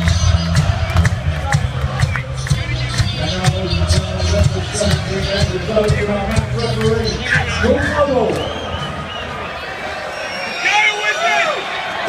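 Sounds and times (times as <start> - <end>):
low murmur of crowd: 0.0 - 12.0.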